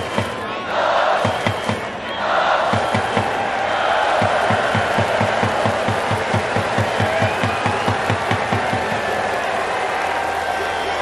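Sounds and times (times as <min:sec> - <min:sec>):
crowd cheering: 0:00.0 - 0:11.0.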